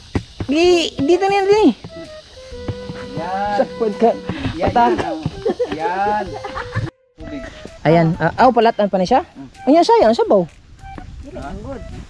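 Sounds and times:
person talking: 3.0s - 6.6s.

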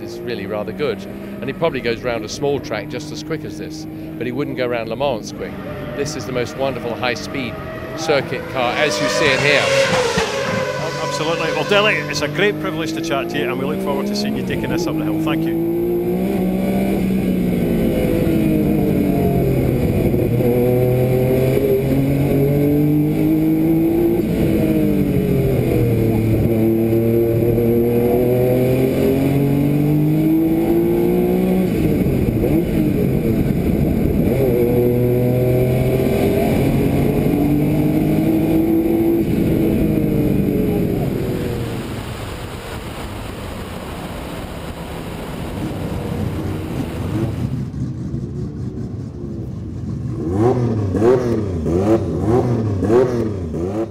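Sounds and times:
race car engine revving: 0.0s - 53.9s.

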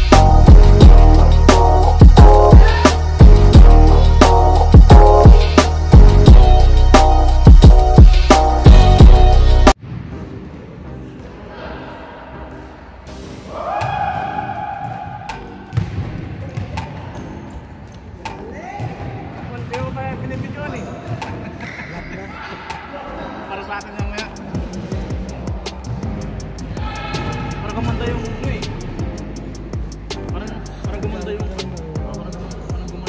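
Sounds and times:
people shouting: 2.5s - 3.2s, 13.4s - 15.3s, 26.7s - 27.9s
players' footsteps on court: 13.8s - 21.6s
basketballs bouncing: 13.8s - 21.7s.

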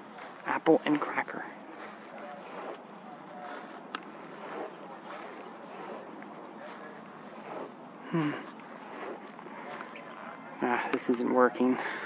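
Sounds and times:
outdoor background hiss: 0.0s - 12.0s
man murmuring: 8.0s - 8.6s.

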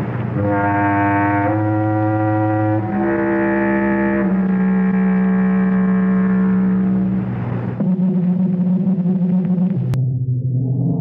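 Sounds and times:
low horn-like theme music: 0.0s - 7.7s.

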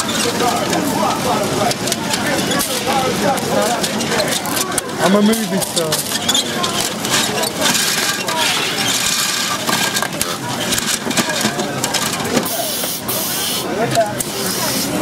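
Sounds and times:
clatter of small clicks and knocks: 0.0s - 12.5s
indistinct voices: 0.0s - 15.0s.

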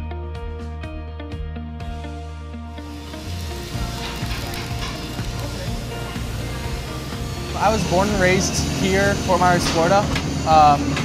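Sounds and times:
background music: 0.0s - 11.0s
welding arc hissing: 2.8s - 10.9s.

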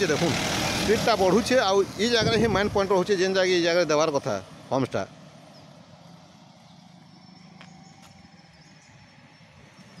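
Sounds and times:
distant truck engine hum: 0.0s - 10.0s.

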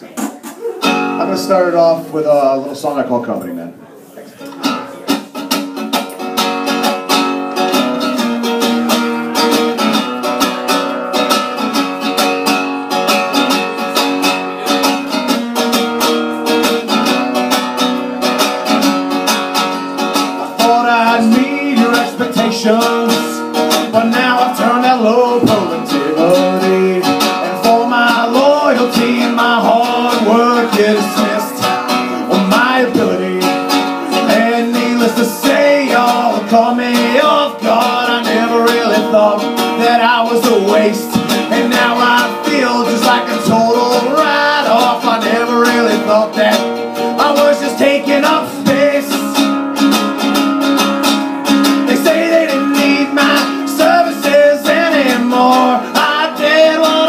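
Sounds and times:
acoustic guitar strumming: 0.0s - 2.7s, 4.5s - 57.0s
man singing: 20.0s - 49.6s, 51.6s - 57.0s.

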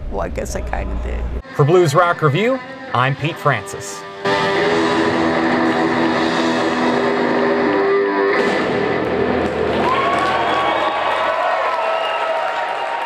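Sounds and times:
electric guitar with band: 4.0s - 10.6s.

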